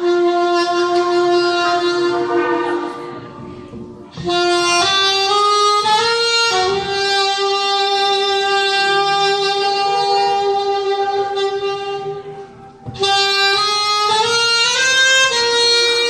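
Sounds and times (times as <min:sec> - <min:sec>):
alto saxophone melody: 0:00.0 - 0:16.0.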